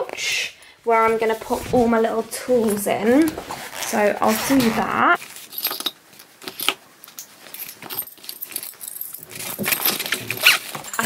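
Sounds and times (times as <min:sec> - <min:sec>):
small metal tools clinking: 0:05.3 - 0:11.0.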